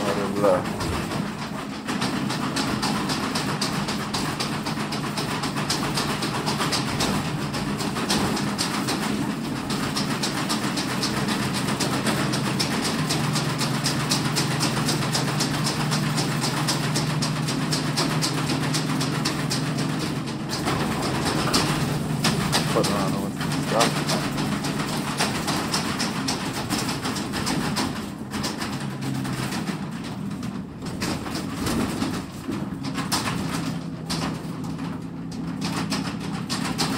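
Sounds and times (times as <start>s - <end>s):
fast rattling clicks: 0.0s - 36.9s.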